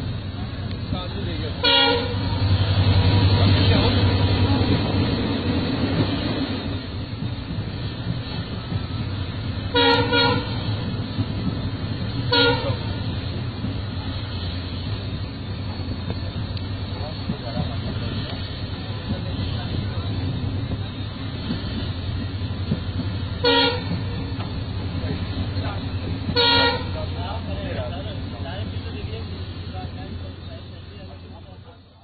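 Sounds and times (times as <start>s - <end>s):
train carriage rumbling: 0.0s - 32.0s
short horn toots: 26.4s - 26.9s.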